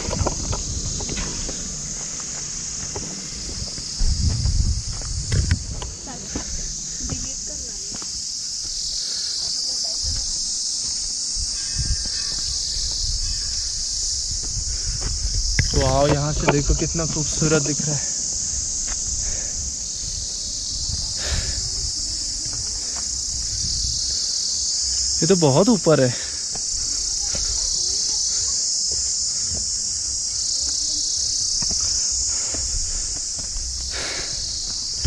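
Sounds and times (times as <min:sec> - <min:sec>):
faint low rumble: 0:00.0 - 0:07.9
low thumps: 0:00.0 - 0:08.1
insects droning: 0:00.0 - 0:35.0.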